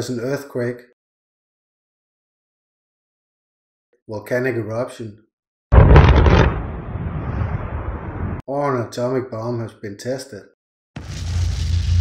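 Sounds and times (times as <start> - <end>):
volcanic eruption blast: 5.7 - 8.4, 11.0 - 12.0
volcanic rumble: 5.8 - 8.4.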